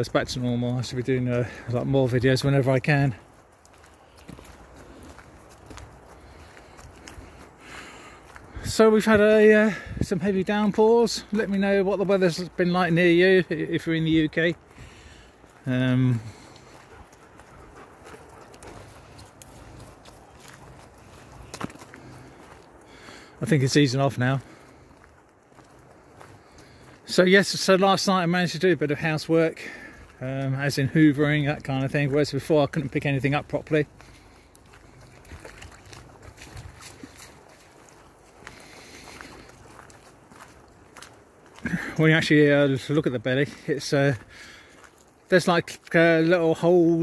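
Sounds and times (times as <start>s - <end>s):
footsteps on gravel: 0.0s - 47.0s.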